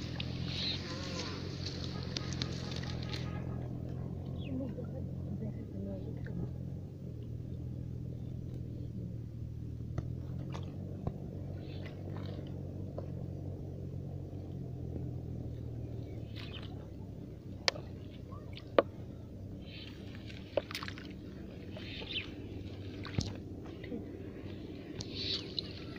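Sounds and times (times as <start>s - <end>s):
light water splashes: 0.0s - 8.7s, 9.8s - 25.9s
steady low hum: 0.0s - 25.9s.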